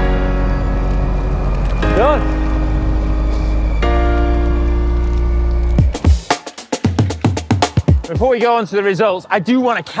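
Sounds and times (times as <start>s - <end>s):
held chord: 0.0s - 6.6s
busy drum pattern: 5.8s - 9.0s.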